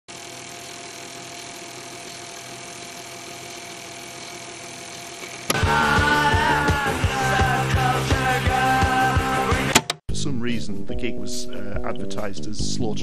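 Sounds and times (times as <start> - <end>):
loud punk rock music: 5.5 - 10.2.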